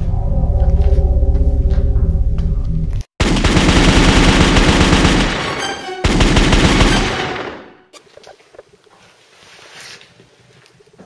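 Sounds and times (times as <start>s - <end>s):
steady deep bass: 0.0s - 3.0s.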